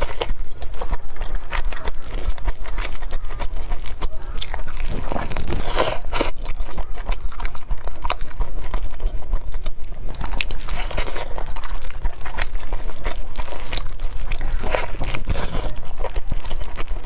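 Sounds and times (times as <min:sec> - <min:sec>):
biting and chewing dumpling: 0:00.0 - 0:17.0.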